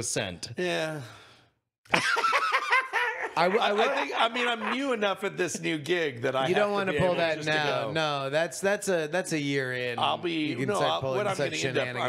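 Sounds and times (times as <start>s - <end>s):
men laughing: 1.9s - 5.7s, 6.5s - 8.1s.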